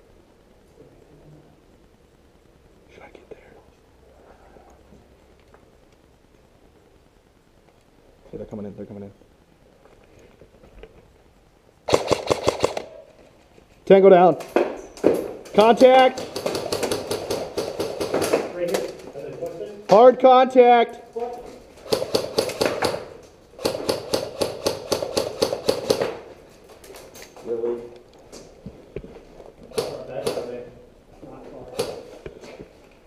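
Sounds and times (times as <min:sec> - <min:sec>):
faint rustle: 0:00.0 - 0:11.8
faint clicks: 0:07.6 - 0:07.9
airsoft rifle shots: 0:11.9 - 0:13.0, 0:16.0 - 0:18.5, 0:21.8 - 0:26.2, 0:29.7 - 0:30.6.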